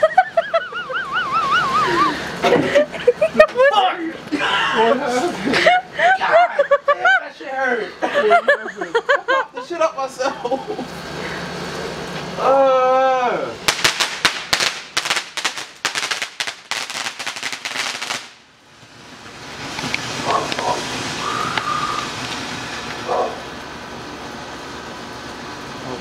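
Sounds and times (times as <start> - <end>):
firework fountain hissing: 0.0 - 6.9, 13.6 - 26.0
firecrackers cracking: 13.6 - 24.1.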